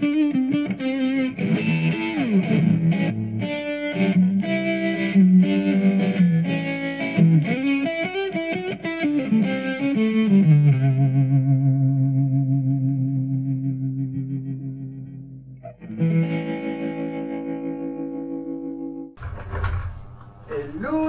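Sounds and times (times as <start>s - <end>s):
electric guitar with shimmer effect: 0.0s - 19.2s.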